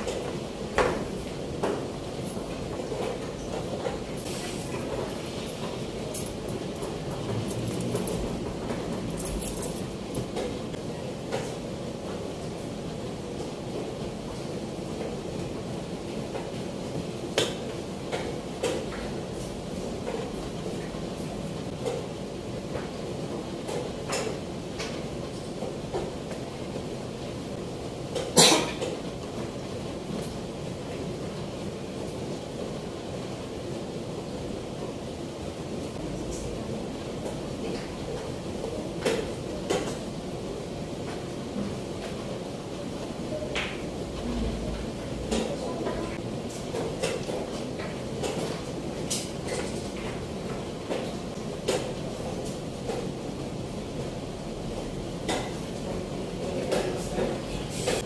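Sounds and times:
room background noise: 0.0s - 58.0s
person coughing: 28.4s - 28.9s.

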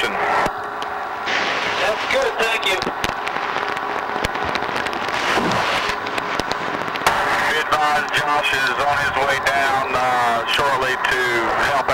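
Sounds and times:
underwater rushing noise: 0.5s - 8.4s
sharp crackling clicks: 2.7s - 7.2s, 8.0s - 8.8s.

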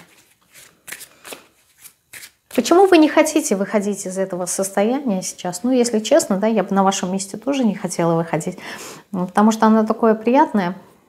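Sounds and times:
cards shuffling: 0.0s - 2.7s.

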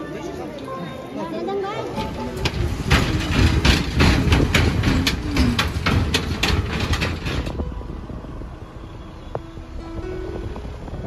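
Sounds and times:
bridge deck clattering: 1.7s - 8.4s
vehicle crossing a bridge: 1.8s - 11.0s.

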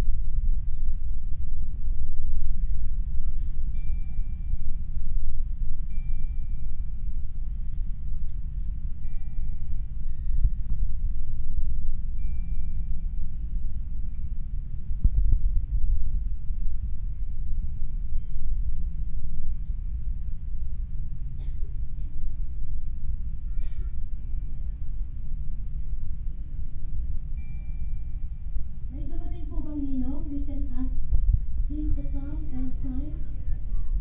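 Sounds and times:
soft held notes: 0.0s - 34.0s
steady low rumble: 0.0s - 34.0s.

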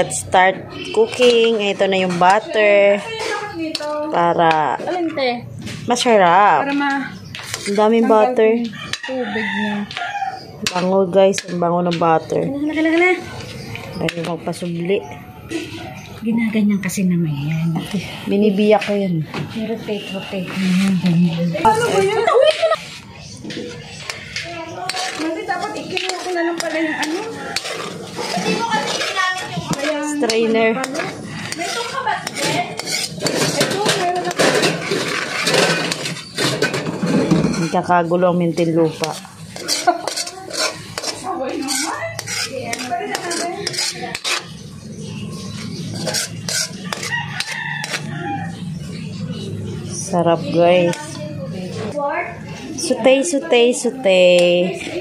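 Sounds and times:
metal spoon scraping a wok: 0.0s - 5.0s, 5.8s - 14.9s, 19.9s - 49.6s
rooster crowing: 8.7s - 10.6s, 26.2s - 27.9s, 46.7s - 48.8s.

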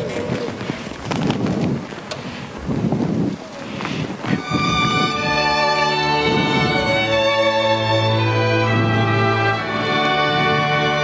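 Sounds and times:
muffled murmuring: 0.0s - 1.4s
shuffling: 0.0s - 7.1s.

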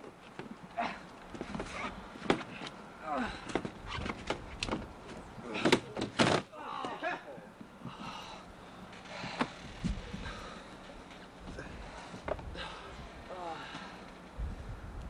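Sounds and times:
body crashing onto plywood boards: 5.5s - 6.5s.

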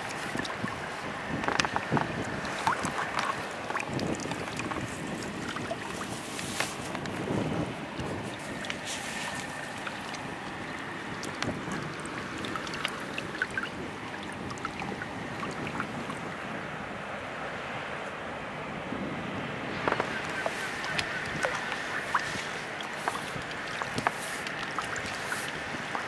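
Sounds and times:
wind on microphone: 0.0s - 17.0s, 18.8s - 26.0s
river water lapping: 0.0s - 26.0s.

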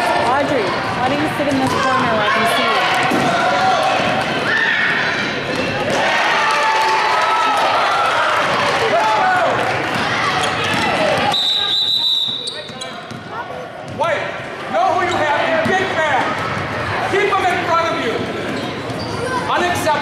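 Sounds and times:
voices calling out in a gym: 0.0s - 20.0s
basketball bouncing: 9.6s - 11.4s, 12.3s - 14.1s
referee's whistle blast: 11.3s - 12.7s.

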